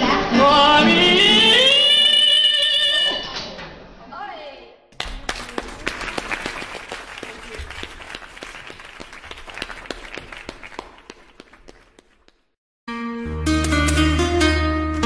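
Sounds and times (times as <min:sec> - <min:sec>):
audience applause: 0:05.0 - 0:12.4.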